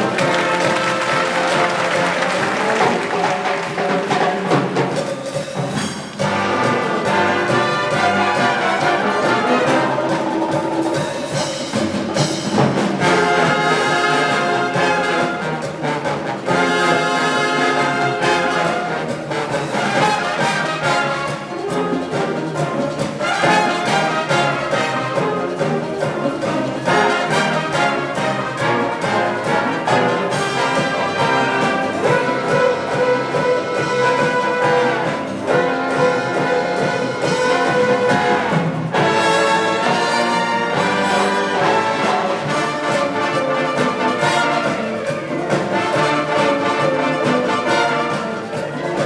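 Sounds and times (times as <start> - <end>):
trumpets and brass: 0.0 - 49.0
wind band playing: 0.0 - 49.0.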